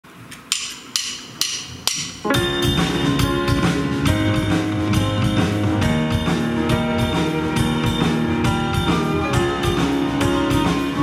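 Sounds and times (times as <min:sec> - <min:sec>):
drumsticks clicking together: 0:00.3 - 0:02.2.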